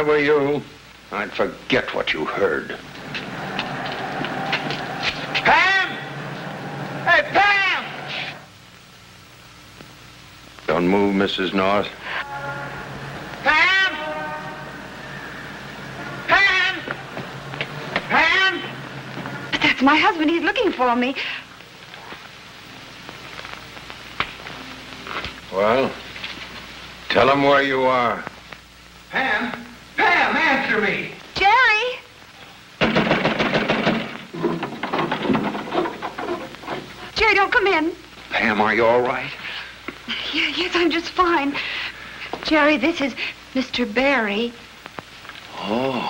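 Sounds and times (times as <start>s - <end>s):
old film soundtrack crackle and hiss: 0.0s - 46.0s
street rumble: 2.8s - 8.4s
man shouting: 5.4s - 6.1s, 7.0s - 8.4s, 13.4s - 14.3s, 16.2s - 16.9s, 18.1s - 18.8s.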